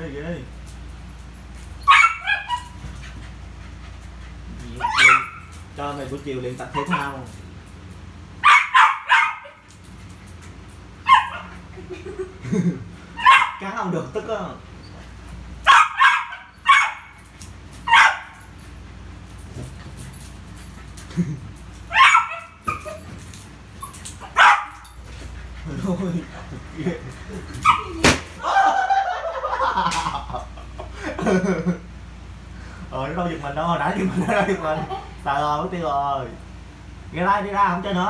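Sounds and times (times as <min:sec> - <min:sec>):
dog barking: 0:01.9 - 0:02.8, 0:04.8 - 0:05.5, 0:08.4 - 0:09.6, 0:11.1 - 0:11.5, 0:13.2 - 0:13.6, 0:15.6 - 0:17.1, 0:17.9 - 0:18.4, 0:21.9 - 0:23.0, 0:24.2 - 0:24.8.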